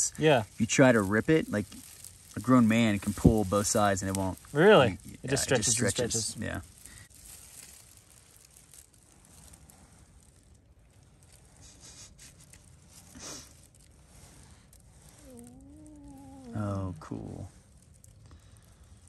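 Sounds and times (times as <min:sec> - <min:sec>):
thread wrapping handling sounds: 0:00.0 - 0:19.0
person humming wavering note: 0:15.2 - 0:17.4.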